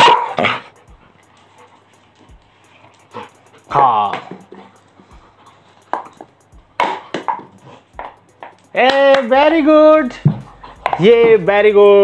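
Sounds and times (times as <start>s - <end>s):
dog barking: 0.0s - 0.8s.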